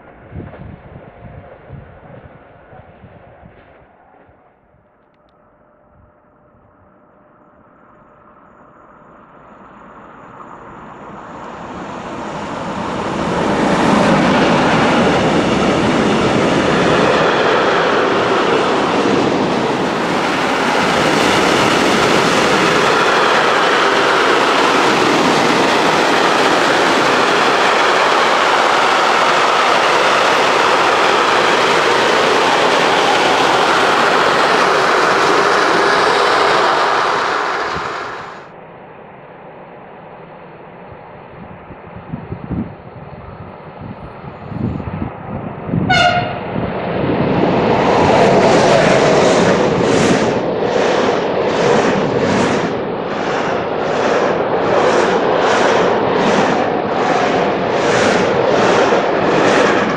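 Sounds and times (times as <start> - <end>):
freight train rumbling on rails: 0.0 - 4.5, 6.4 - 59.9.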